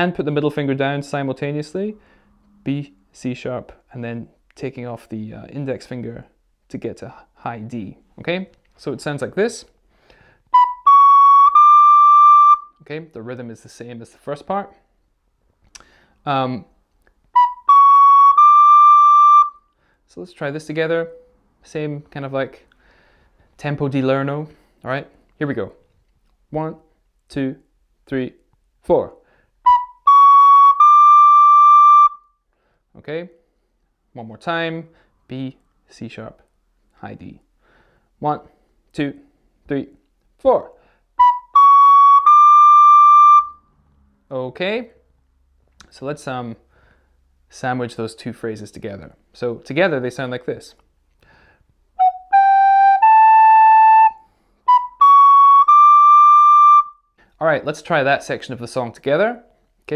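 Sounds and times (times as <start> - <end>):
recorder playing rising notes: 10.5 - 12.8, 17.4 - 19.6, 29.6 - 32.2, 41.2 - 43.7, 52.0 - 57.0.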